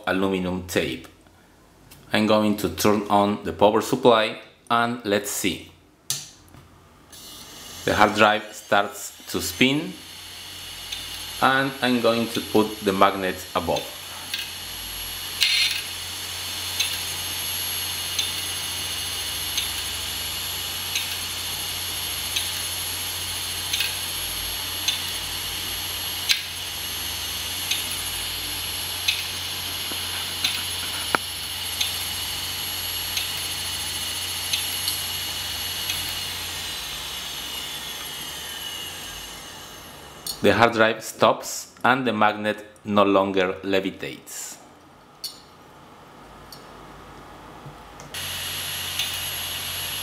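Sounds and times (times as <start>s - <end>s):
hard drive whine: 7.0s - 40.5s, 47.6s - 50.0s.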